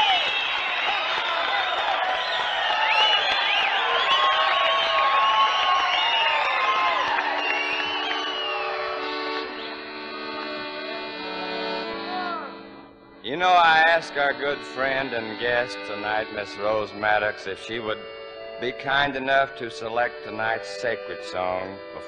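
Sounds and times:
high whistle-like calls: 0.0 - 9.9
audience applauding and cheering: 0.0 - 10.4
band playing soft held chord: 7.4 - 18.9.

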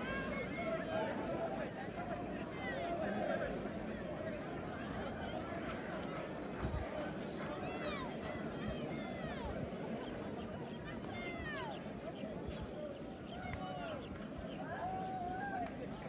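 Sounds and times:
distant chatter of voices: 0.0 - 16.0.

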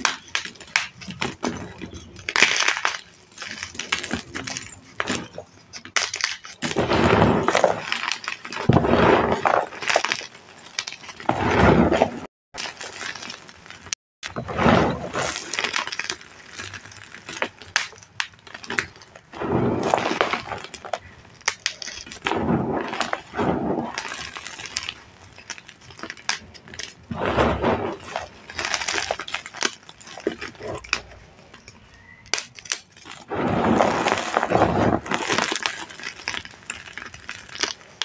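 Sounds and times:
falling grit: 0.0 - 31.6, 32.4 - 38.0
chalk crunching and crumbling: 0.0 - 38.0.

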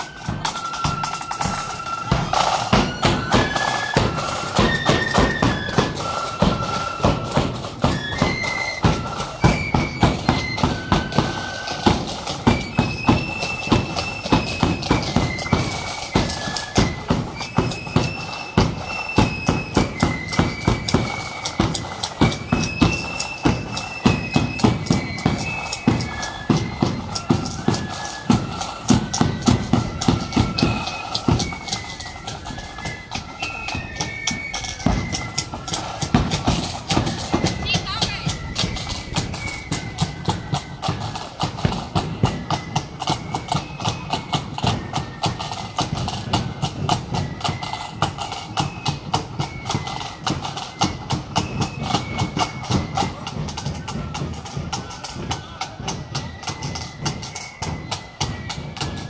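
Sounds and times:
flutes playing melody: 0.0 - 59.0
steady drum beat: 0.0 - 59.0.

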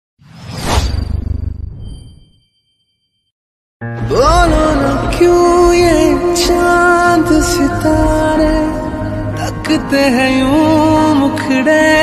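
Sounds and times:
whoosh: 0.2 - 2.4.

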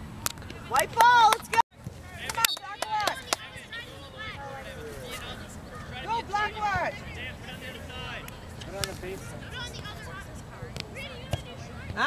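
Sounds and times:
distant voices talking: 0.5 - 12.0.

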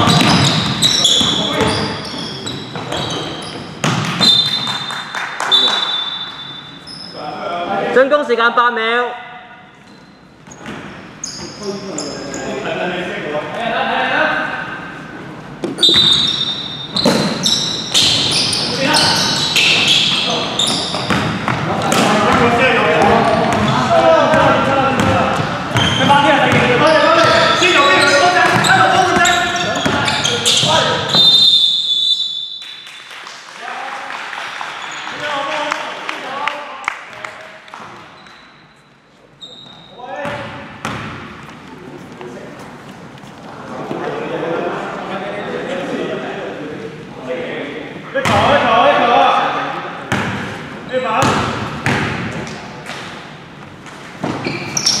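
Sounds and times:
basketball bouncing: 0.0 - 1.9, 3.8 - 4.7, 20.9 - 23.7, 24.3 - 31.1, 40.2 - 41.6, 51.2 - 52.4
referee's whistle: 4.2 - 7.2, 15.8 - 20.9, 30.1 - 32.8
players calling out: 15.6 - 32.4.

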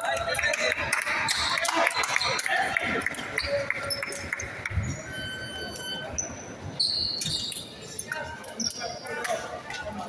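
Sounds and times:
chatter echoing in sports hall: 0.0 - 10.0
sneakers squeaking on court: 5.8 - 7.9.

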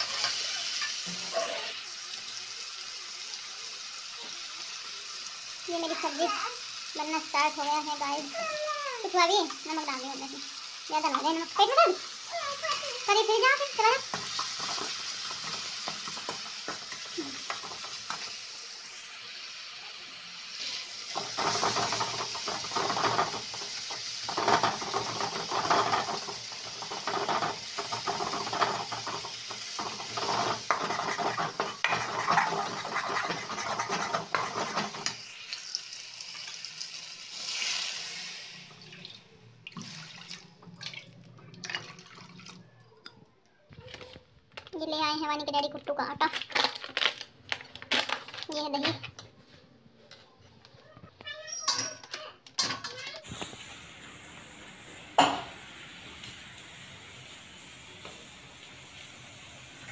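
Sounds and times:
food sizzling hiss: 0.0 - 40.6, 52.9 - 59.9
water pouring into pan: 20.3 - 42.7
spoon scraping metal pan: 21.1 - 35.2.

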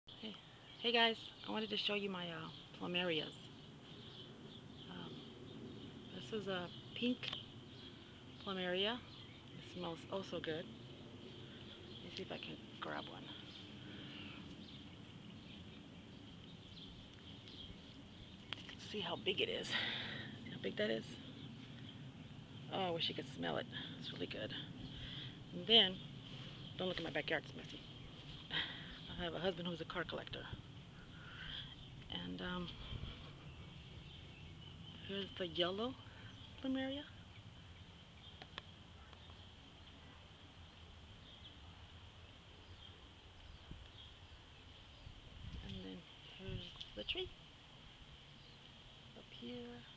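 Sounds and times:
steady low hiss: 0.1 - 49.9
low rumble: 1.4 - 49.9.

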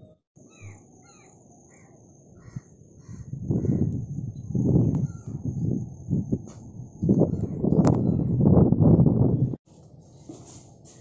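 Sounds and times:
crows cawing: 0.5 - 3.9.

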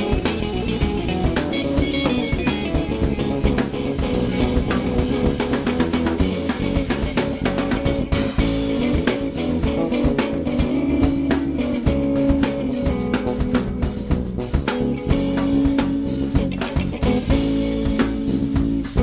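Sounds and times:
bass: 0.0 - 19.0
drum kit: 0.0 - 19.0
guitar: 0.0 - 19.0.

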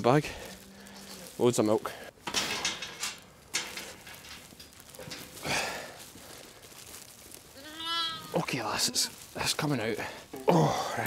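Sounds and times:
plastic rustling on straw: 0.0 - 11.0.

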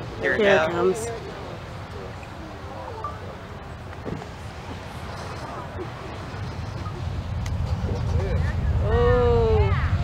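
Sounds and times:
distant rocket rumble: 4.0 - 10.0.

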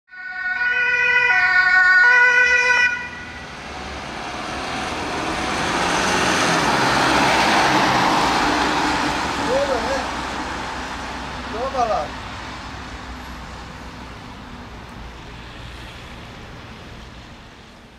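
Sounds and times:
two-tone siren: 0.1 - 3.9
ambulance driving past: 0.1 - 11.8.

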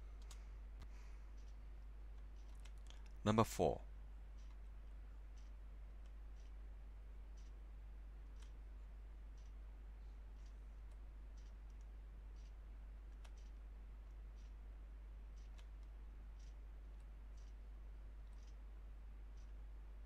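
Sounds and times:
steady low hum: 0.0 - 20.0
faint ticking: 4.3 - 12.6, 15.3 - 19.8.

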